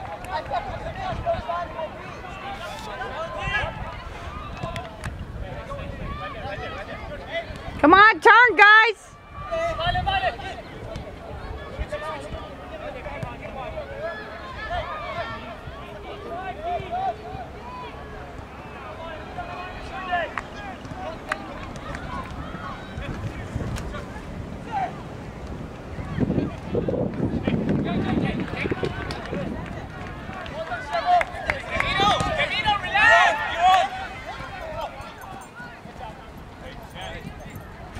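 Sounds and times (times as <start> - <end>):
wind rumble on microphone: 0.0 - 2.0, 3.0 - 7.8, 9.1 - 12.6, 21.0 - 37.9
faint voices calling and chattering: 0.0 - 37.9.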